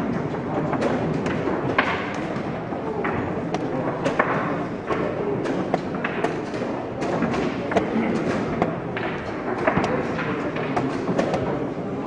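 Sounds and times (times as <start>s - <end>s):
chess pieces knocking on board: 0.1s - 11.6s.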